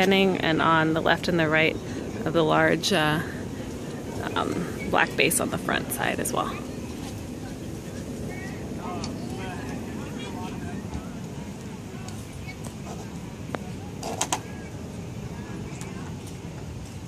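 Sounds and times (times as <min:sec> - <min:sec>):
distant indistinct voices: 0:00.0 - 0:17.0
steady low rumble: 0:00.0 - 0:17.0.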